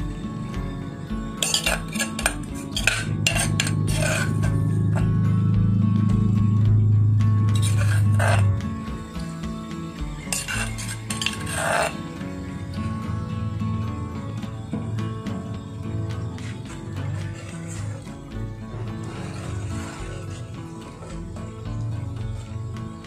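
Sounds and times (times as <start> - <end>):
background music: 0.0 - 23.0
metal ladle scraping a pot: 1.4 - 5.3, 7.5 - 9.3, 10.2 - 13.0, 16.2 - 22.7.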